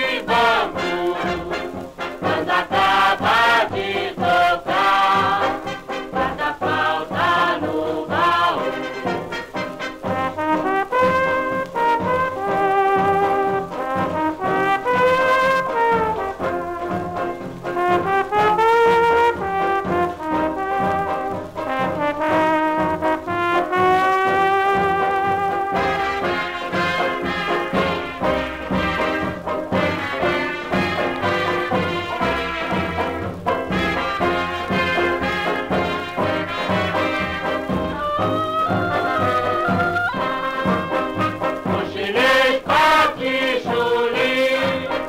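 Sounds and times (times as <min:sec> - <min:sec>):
orchestra playing samba: 0:00.0 - 0:45.0.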